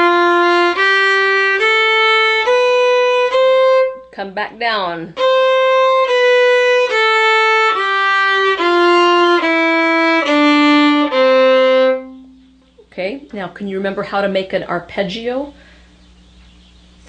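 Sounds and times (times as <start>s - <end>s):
fiddle playing a descending scale: 0.0s - 4.1s, 5.2s - 12.6s.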